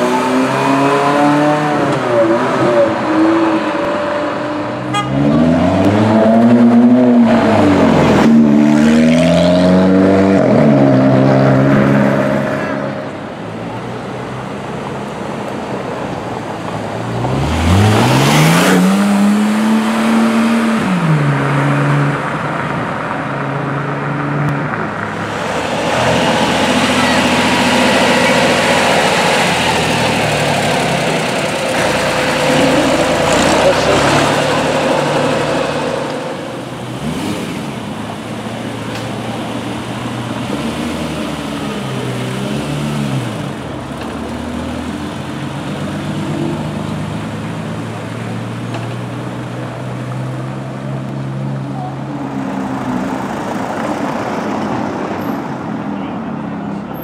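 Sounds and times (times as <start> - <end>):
engine revving and changing gear: 0.0 - 13.2, 17.1 - 51.7
car engines accelerating away: 0.0 - 57.0
tractor engine passing: 24.9 - 39.4.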